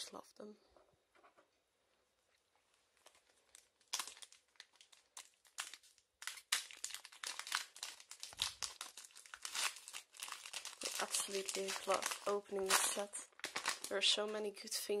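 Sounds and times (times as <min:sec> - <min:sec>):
foil wrapper crinkling and tearing: 0:03.0 - 0:14.4.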